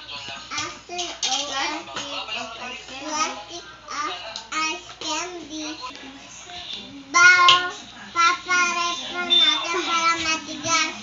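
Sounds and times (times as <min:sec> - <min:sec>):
young child singing: 0:07.1 - 0:11.0.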